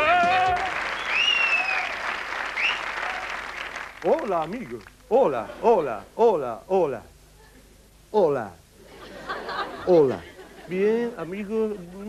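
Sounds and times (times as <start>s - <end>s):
crowd whistling: 0.0s - 3.7s
audience applauding: 0.0s - 4.6s.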